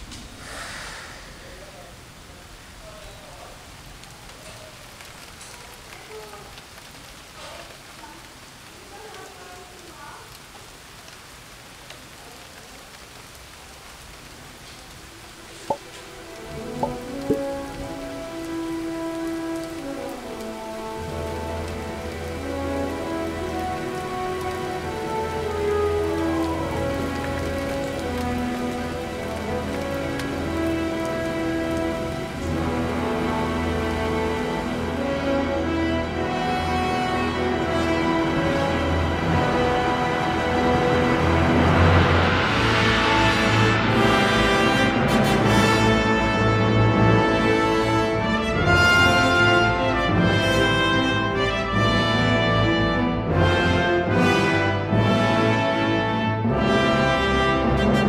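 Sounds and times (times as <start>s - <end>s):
soft hiss: 0.0s - 5.6s
background music: 15.6s - 58.0s.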